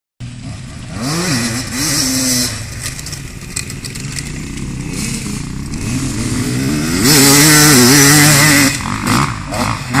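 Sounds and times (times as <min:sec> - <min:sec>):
dirt bike engines revving: 0:00.2 - 0:10.0.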